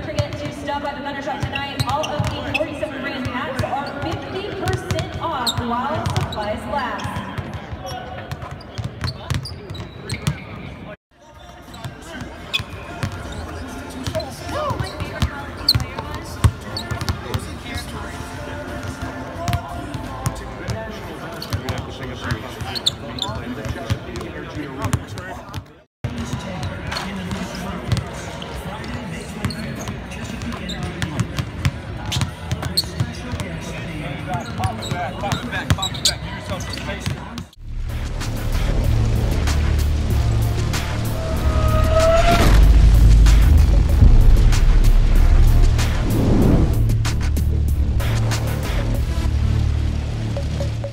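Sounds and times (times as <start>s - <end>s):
basketballs bouncing on hardwood: 4.0s - 6.4s.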